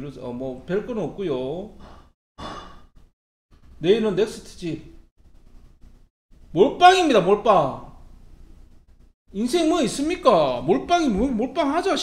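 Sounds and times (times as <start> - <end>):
man speaking: 9.4 - 12.0.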